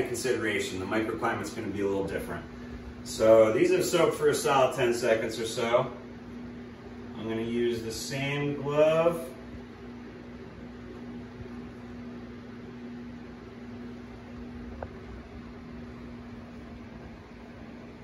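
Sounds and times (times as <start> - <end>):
electric fan whirring: 0.0 - 18.0.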